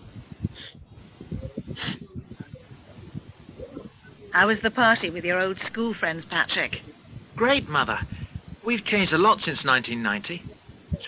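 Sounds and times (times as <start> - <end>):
breath noises close to microphone: 0.3 - 4.0, 8.0 - 8.6.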